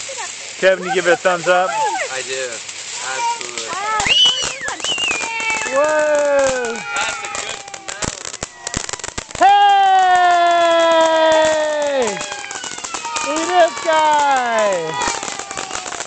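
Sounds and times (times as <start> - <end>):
firework fountain crackling: 0.0 - 16.0.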